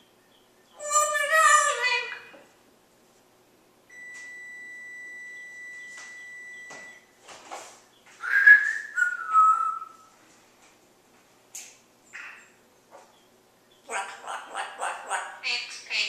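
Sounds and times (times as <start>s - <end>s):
parrot whistling: 8.2s - 10.0s.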